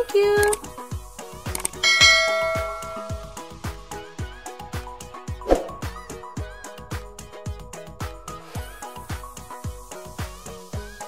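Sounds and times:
bright bell chime: 0:01.8 - 0:03.6
dance-pop music with steady beat: 0:07.0 - 0:11.0.

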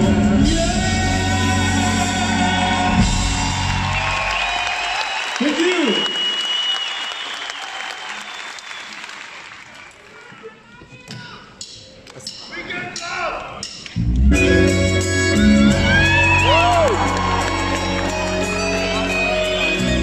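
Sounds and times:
live band playing: 0:00.0 - 0:04.4, 0:11.6 - 0:20.0
audience applause and cheering: 0:01.3 - 0:10.6, 0:15.0 - 0:20.0.

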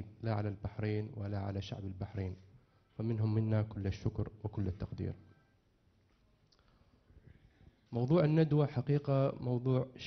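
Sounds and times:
man speaking into a microphone: 0:00.0 - 0:05.5, 0:07.8 - 0:10.0.

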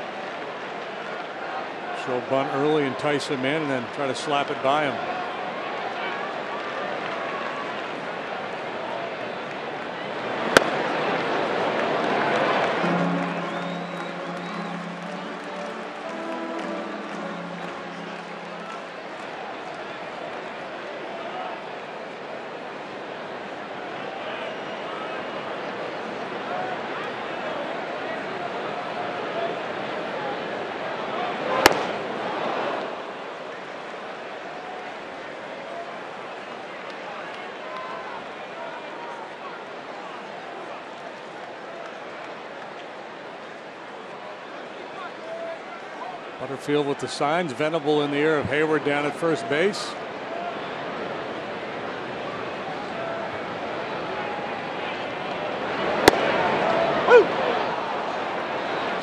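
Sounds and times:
crowd murmur: 0:00.0 - 0:59.0
baseball hitting catcher's mitt: 0:10.5 - 0:10.8, 0:31.6 - 0:31.9, 0:56.0 - 0:56.4
stadium organ playing: 0:12.6 - 0:19.5.

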